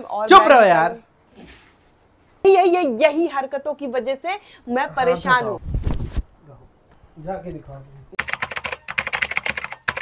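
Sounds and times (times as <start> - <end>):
computer keyboard typing: 8.2 - 10.0.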